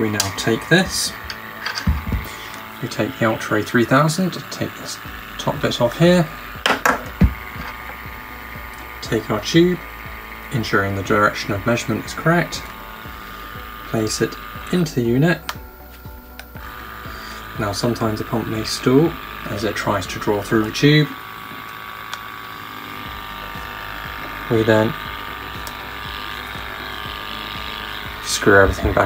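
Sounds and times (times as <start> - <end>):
small sampling pump running: 0.0 - 29.0
steady hum: 0.0 - 29.0
dull thump on bench: 1.8 - 2.3.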